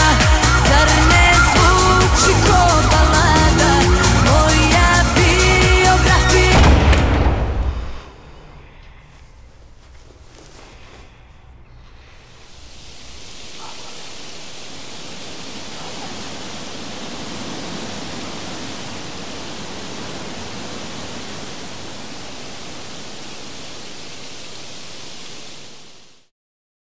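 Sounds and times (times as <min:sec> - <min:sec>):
loud rushing hiss: 0:00.0 - 0:08.8, 0:10.7 - 0:26.3.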